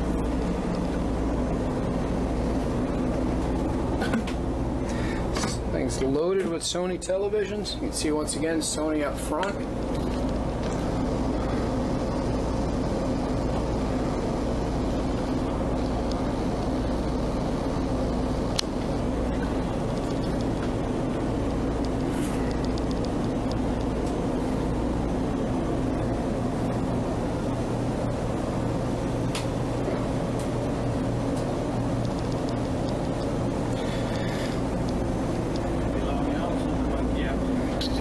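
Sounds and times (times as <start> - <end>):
low mechanical hum: 0.0 - 38.0.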